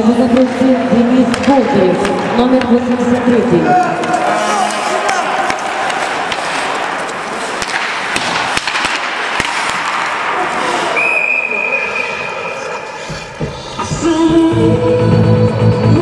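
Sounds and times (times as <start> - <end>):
hockey sticks clacking on puck: 0.1 - 0.6, 1.2 - 10.9
skate blades scraping ice: 4.0 - 11.0
referee's whistle: 11.0 - 12.6.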